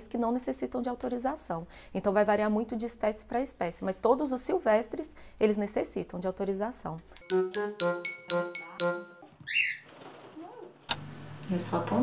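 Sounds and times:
background music: 7.2s - 9.3s
cockatiel chirping call: 9.4s - 9.8s.

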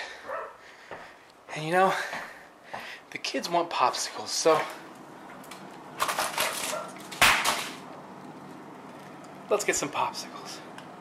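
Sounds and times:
freezer clicks and rustling: 5.4s - 7.8s.

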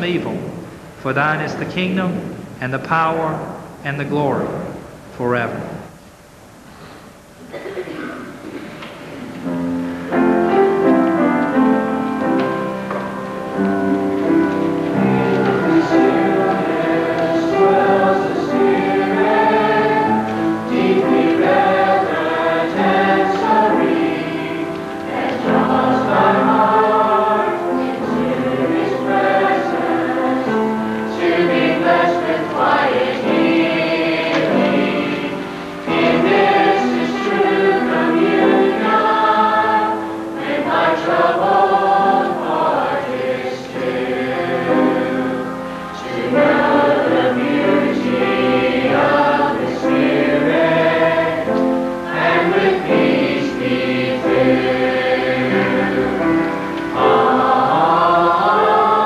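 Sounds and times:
church choir singing: 7.5s - 59.0s.

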